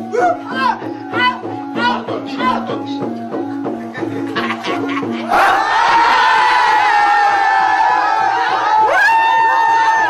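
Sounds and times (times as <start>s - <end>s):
men's voices crying out: 0.0s - 2.1s.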